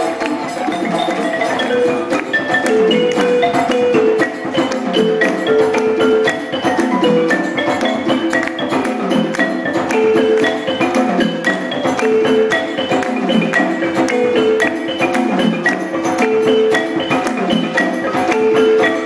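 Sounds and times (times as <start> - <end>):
hand drums rhythm: 0.0 - 19.0
wooden xylophone melody: 0.0 - 19.0.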